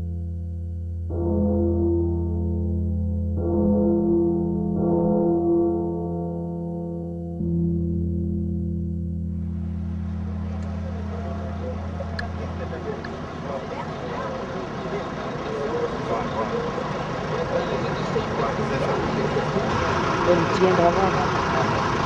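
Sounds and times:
low sustained music tone: 0.0 - 18.3
traffic noise: 9.3 - 22.0
crowd talking: 9.9 - 22.0.

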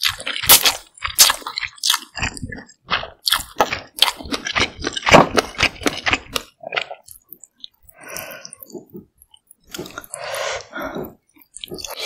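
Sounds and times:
wet chewing of noodles: 0.0 - 12.0.

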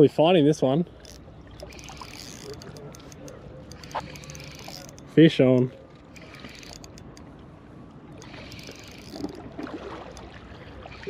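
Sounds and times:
water lapping against rocks: 0.9 - 11.0
spinning reel clicking: 1.0 - 7.2, 8.2 - 9.4.

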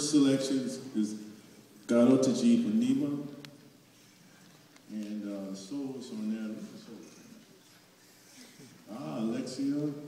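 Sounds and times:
man speaking: 0.0 - 3.4, 4.9 - 7.4, 8.4 - 10.0.

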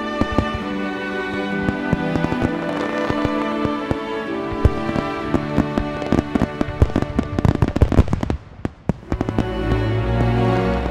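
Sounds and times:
fireworks crackling and popping: 0.0 - 10.9.

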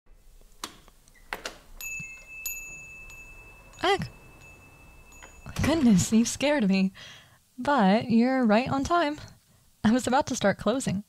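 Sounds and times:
door clicks: 0.4 - 2.3
shop door bell ringing: 1.8 - 6.6.

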